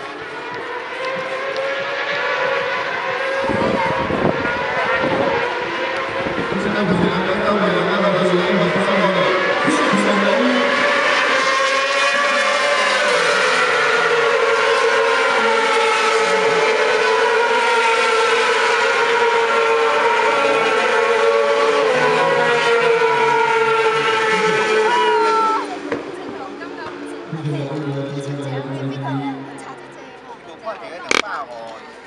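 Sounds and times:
racing motorcycles passing at high revs: 0.0 - 29.9.

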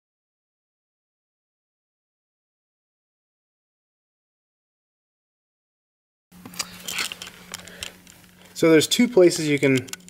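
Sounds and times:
steady low hum: 6.3 - 10.0
cable rustling and clicking: 6.4 - 10.0.

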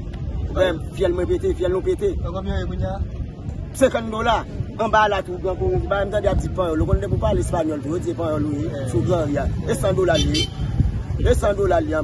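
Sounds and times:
man speaking: 3.8 - 10.5.

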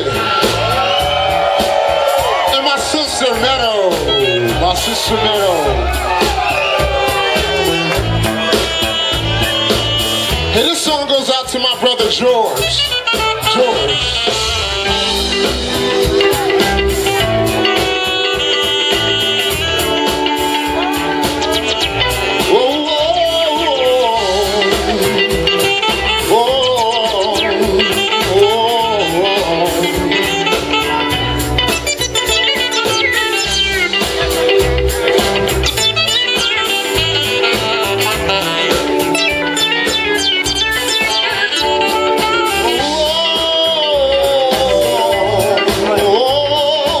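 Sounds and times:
live band playing: 0.0 - 47.0.

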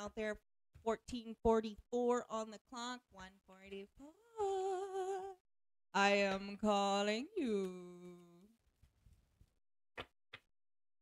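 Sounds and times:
woman humming a note: 4.0 - 5.4.

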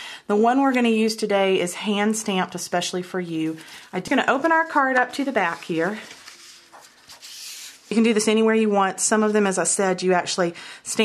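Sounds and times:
cardstock rustling: 3.4 - 8.1.

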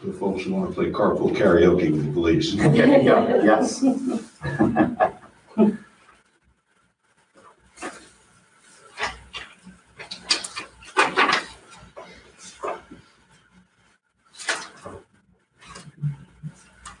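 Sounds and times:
breathy laughter: 4.0 - 5.8
paper sheets rustling: 7.8 - 13.1, 14.3 - 17.0.

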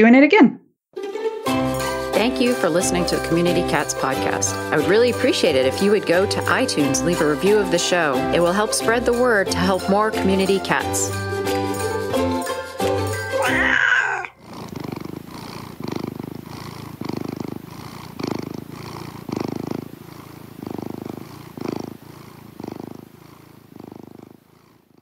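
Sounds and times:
music jingle: 1.0 - 13.7
cat purring: 2.2 - 11.2, 13.4 - 25.0.

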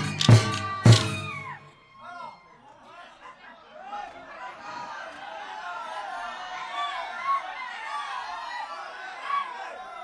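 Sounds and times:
dhol drum strokes: 0.0 - 1.4.

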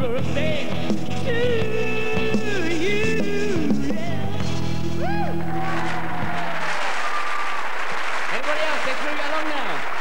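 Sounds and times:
person singing: 0.0 - 4.4
rock band playing: 0.0 - 6.5
audience applause: 5.5 - 10.0.

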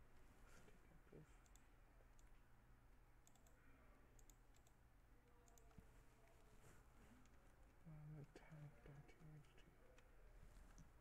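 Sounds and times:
computer mouse clicks: 1.4 - 2.4, 3.2 - 4.8, 5.4 - 5.8
keyboard clicks: 3.2 - 3.6, 4.2 - 4.8.

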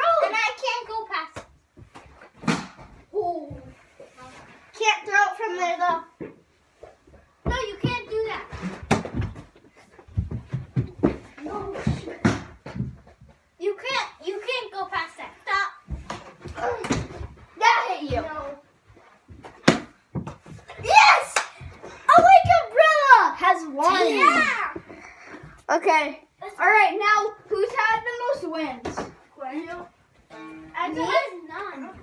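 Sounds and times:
ball hitting floor and walls: 0.0 - 3.8, 6.2 - 25.6, 27.5 - 32.0
children shouting and squealing: 20.8 - 24.8.

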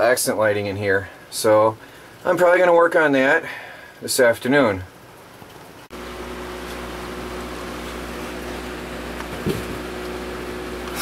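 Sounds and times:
heavy rain pouring: 0.0 - 11.0
steady machine hum: 5.9 - 11.0.

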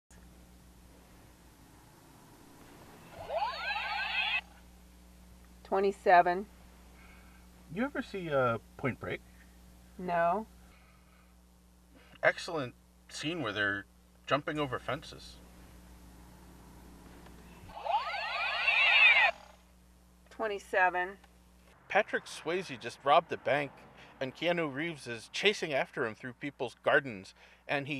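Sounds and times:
faint low hum: 0.1 - 27.9
rising electronic sweeps: 3.0 - 4.4, 17.7 - 19.5
vehicle passing by: 21.8 - 24.4.

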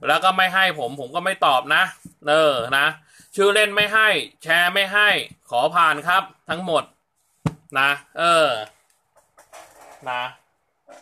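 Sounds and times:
faint breath: 3.0 - 3.4.

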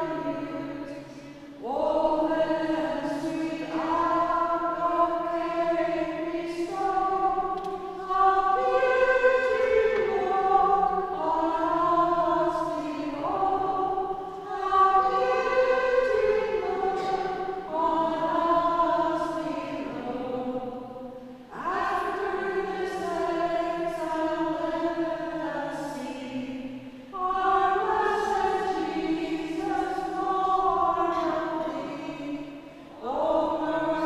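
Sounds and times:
congregation singing a hymn: 0.0 - 34.0.

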